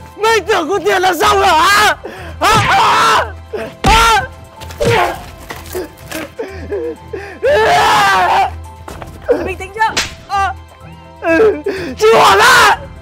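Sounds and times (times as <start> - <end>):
background music: 0.0 - 13.0
distressed shouting and wailing: 0.1 - 13.0
sharp smack: 9.9 - 10.3.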